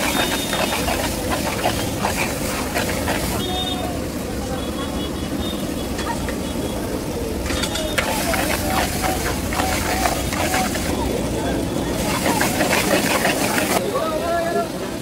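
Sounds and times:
metal spatula scraping a wok: 0.0s - 3.4s, 12.0s - 13.8s
murmur of voices: 0.1s - 15.0s.

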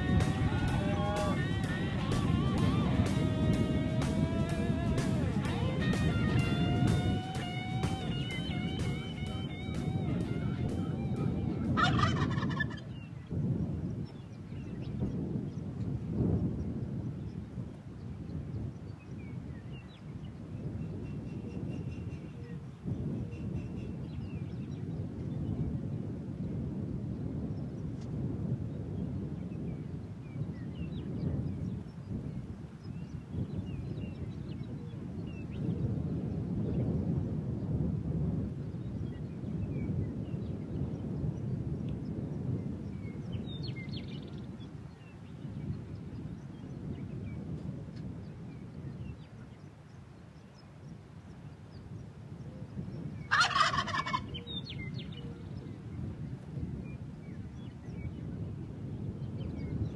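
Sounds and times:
guitar music: 0.0s - 11.8s
wind on microphone: 0.0s - 59.9s
turkey gobbling: 4.5s - 12.9s, 53.3s - 54.4s.

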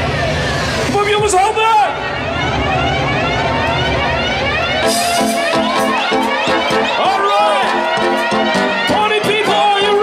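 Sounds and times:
heavy bass: 0.0s - 10.0s
live band music: 0.0s - 10.0s.

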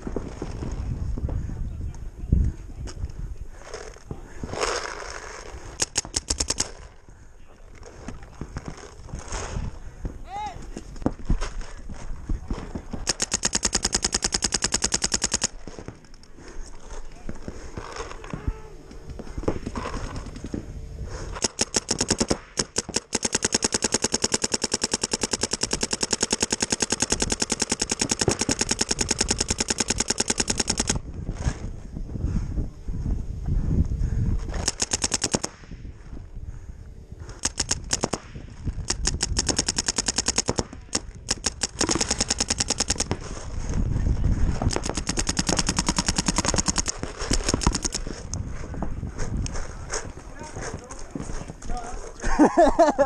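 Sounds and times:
paintball marker shots: 5.7s - 6.8s, 21.3s - 31.0s, 37.3s - 43.4s, 44.5s - 48.2s.

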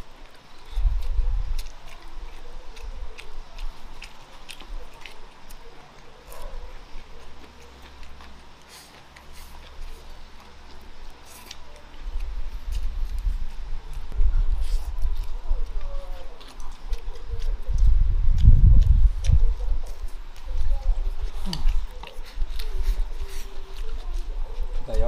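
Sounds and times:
person chewing food: 0.0s - 25.0s.

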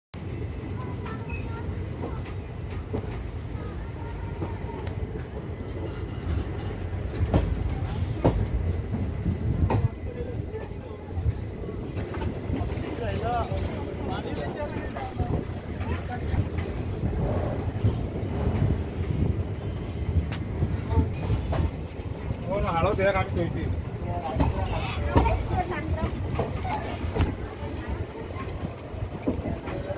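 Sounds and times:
high wheel squeal: 0.2s - 6.4s, 10.9s - 13.2s, 17.2s - 22.8s
train wheels rumbling: 0.2s - 29.9s.

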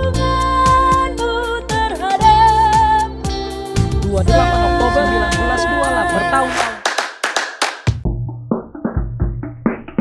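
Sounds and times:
drum kit playing: 1.7s - 10.0s
sharp hand claps: 6.5s - 8.0s.

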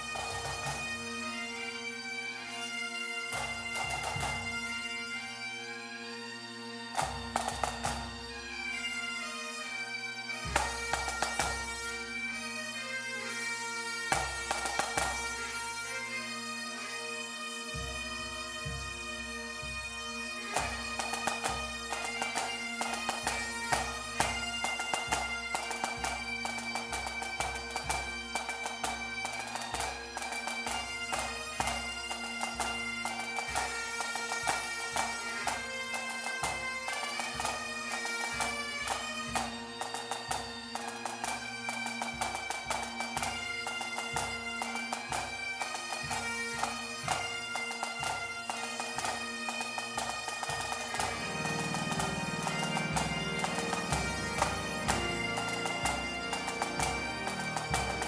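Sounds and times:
bagpipes playing melody with drones: 0.0s - 58.0s.

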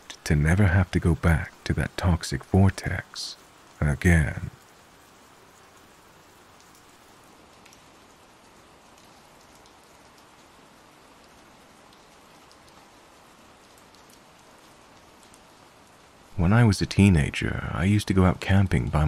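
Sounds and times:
rain drop ticks: 0.0s - 19.0s
soft steady rainfall: 0.0s - 19.0s.

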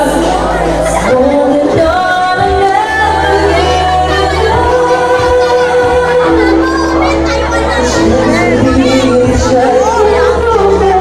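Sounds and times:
backing music: 0.0s - 11.0s
woman singing into a microphone: 0.0s - 11.0s.

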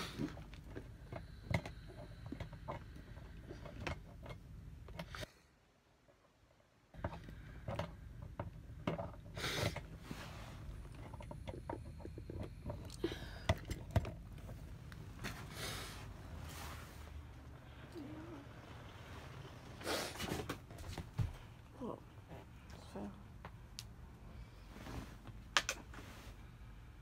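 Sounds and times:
steady low hum: 0.0s - 5.4s, 6.9s - 27.0s.

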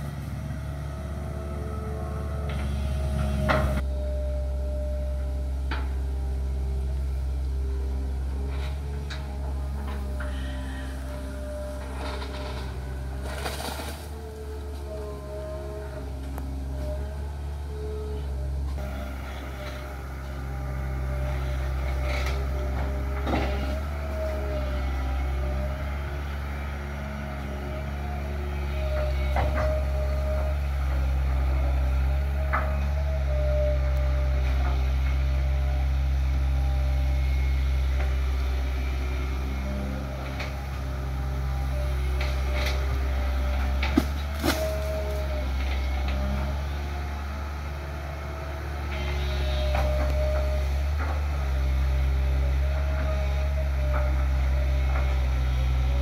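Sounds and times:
excavator diesel engine droning: 0.0s - 56.0s.

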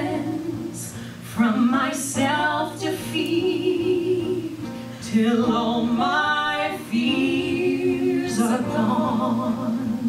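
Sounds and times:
women singing together: 0.0s - 10.0s.

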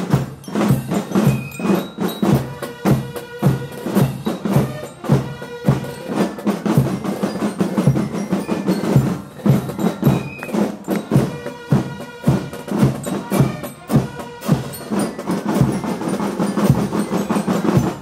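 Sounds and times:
marching band drums: 0.0s - 18.0s.

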